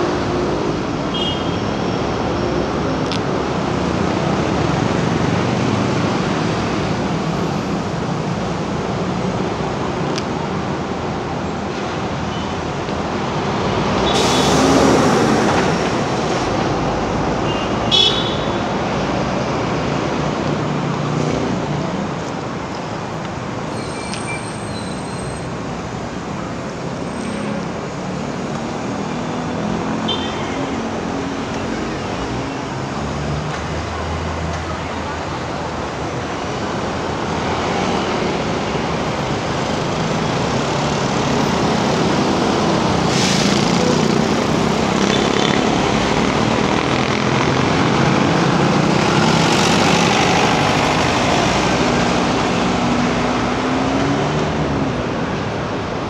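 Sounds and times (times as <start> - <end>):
cars and motorcycles passing: 25.4 - 56.0.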